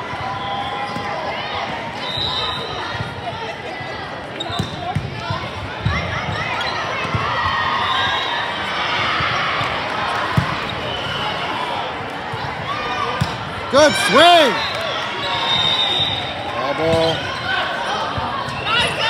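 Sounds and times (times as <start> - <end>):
people shouting in a gym: 0.0 - 19.0.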